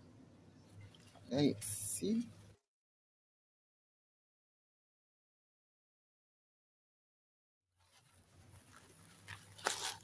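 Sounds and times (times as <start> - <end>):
paper wrapping crinkling: 7.8 - 10.0.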